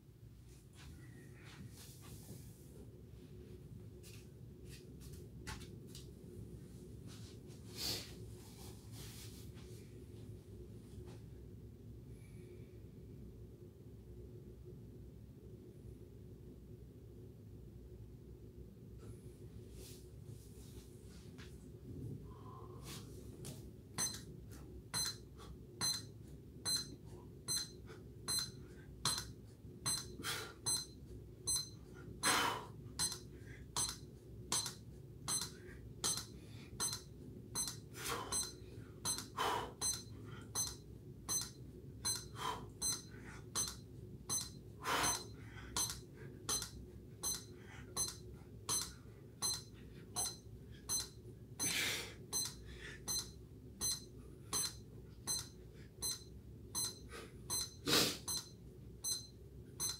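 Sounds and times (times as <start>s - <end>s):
short high beeps: 24.0s - 24.2s, 25.0s - 25.2s, 25.8s - 26.1s, 27.5s - 29.3s, 30.7s - 30.9s, 31.5s - 31.7s, 37.6s - 51.8s, 52.4s - 59.9s.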